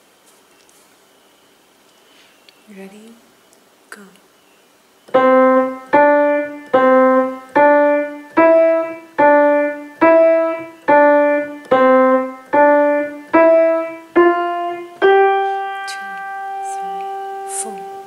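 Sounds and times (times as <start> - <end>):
grand piano melody: 5.1 - 18.0.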